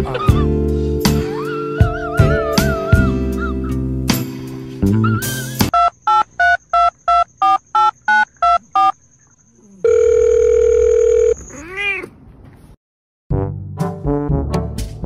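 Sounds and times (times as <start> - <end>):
steady phone tone: 9.8 - 11.6
cat meow: 11.4 - 12.2.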